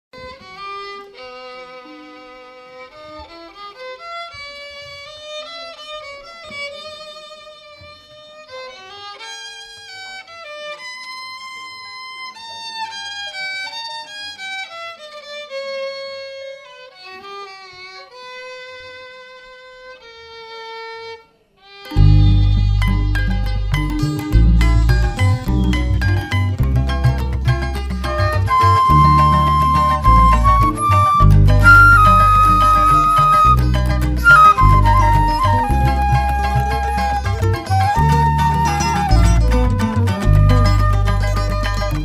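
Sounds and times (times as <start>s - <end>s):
violin melody with vibrato: 0.2s - 12.0s, 19.8s - 42.0s.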